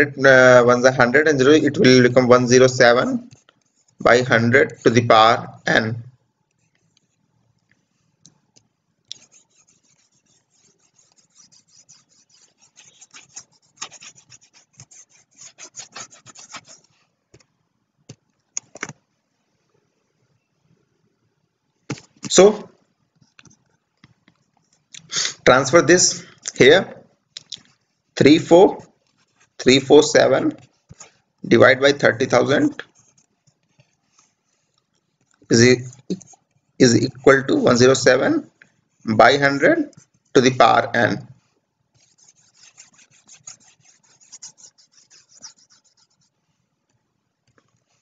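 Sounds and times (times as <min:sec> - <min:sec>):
stylus scratching on tablet: 0:00.8 - 0:05.0, 0:09.1 - 0:17.1, 0:28.5 - 0:31.2, 0:32.0 - 0:38.1, 0:39.0 - 0:40.6, 0:42.0 - 0:46.5.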